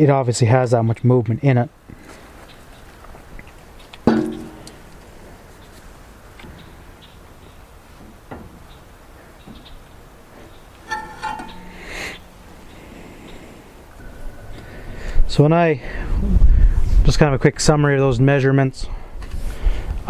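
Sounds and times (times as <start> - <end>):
metal clunk with ring: 4.1 - 4.6, 10.9 - 12.8.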